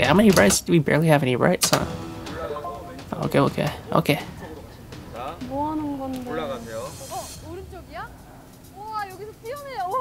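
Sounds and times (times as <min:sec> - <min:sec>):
played-back show audio: 0:00.0 - 0:10.0
women talking: 0:05.4 - 0:06.5, 0:07.1 - 0:10.0
hiss: 0:06.5 - 0:08.5.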